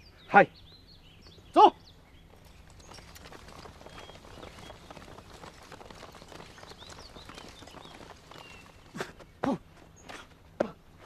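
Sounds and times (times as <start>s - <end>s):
many footsteps on grass: 1.4s - 11.0s.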